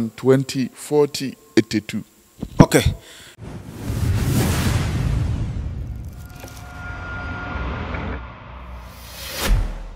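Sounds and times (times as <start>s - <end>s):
low rumble: 3.4s - 9.3s.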